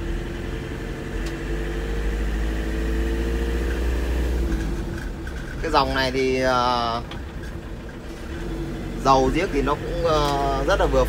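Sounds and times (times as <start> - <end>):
diesel engine drone: 0.0 - 11.0
road noise: 0.0 - 11.0.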